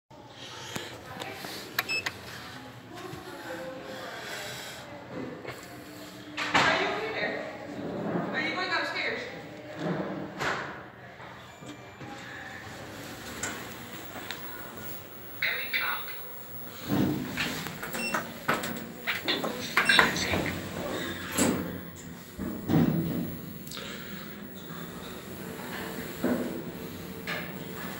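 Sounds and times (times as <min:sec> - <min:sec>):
indistinct voices talking: 0:12.6 - 0:27.9.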